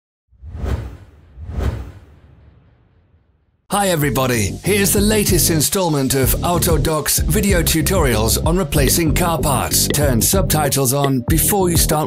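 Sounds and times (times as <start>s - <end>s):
whooshes: 0.3s - 3.6s.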